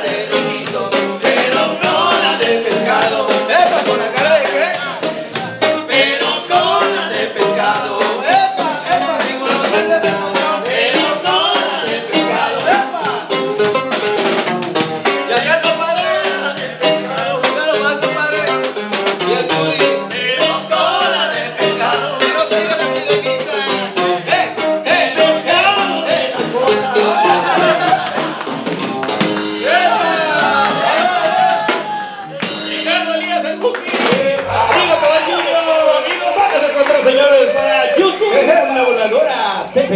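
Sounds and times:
latin band music: 0.0 - 39.9
men singing: 0.0 - 39.9.

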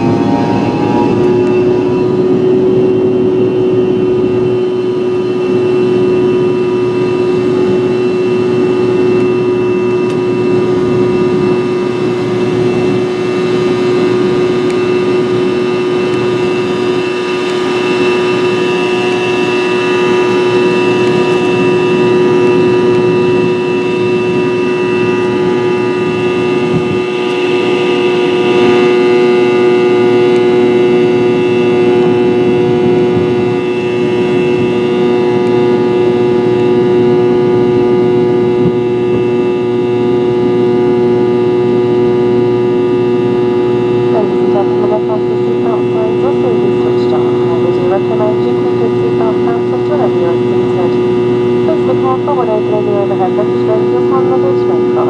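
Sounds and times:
airliner cabin engine drone: 0.0 - 55.0
high engine whine: 0.0 - 55.0.

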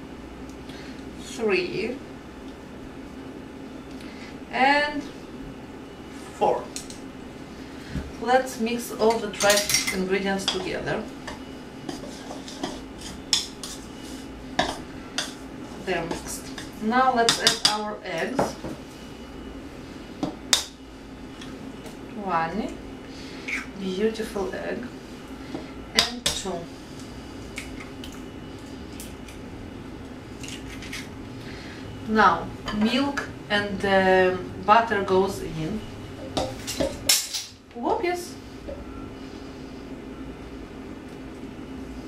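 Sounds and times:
utensil stirring in a bowl: 11.2 - 17.8.

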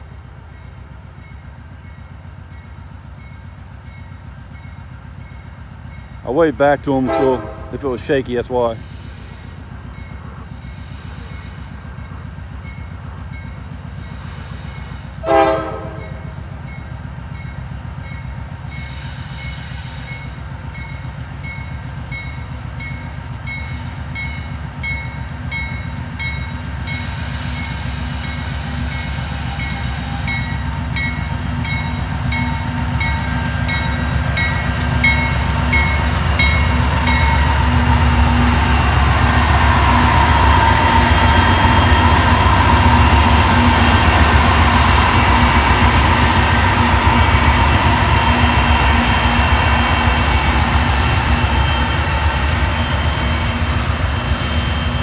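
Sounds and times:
locomotive engine rumble: 0.0 - 55.0
loud horn toot: 7.0 - 7.8, 15.2 - 16.2
locomotive bell ringing: 28.3 - 37.6.

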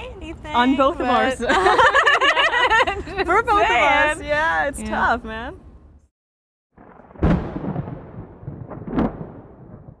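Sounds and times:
thunder-like crash: 6.8 - 10.0.

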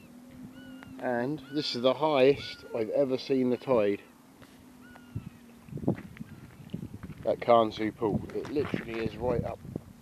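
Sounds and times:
faint bird whistle: 0.0 - 2.9, 4.8 - 5.5
shoreline ambience: 0.0 - 10.0
soft footsteps on path: 4.4 - 9.6.

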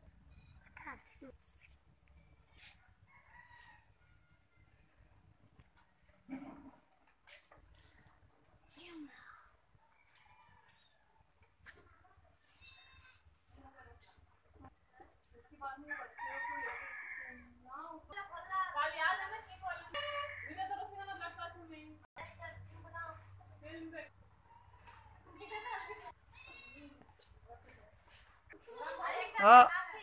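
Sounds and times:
rooster crowing: 15.9 - 17.5.

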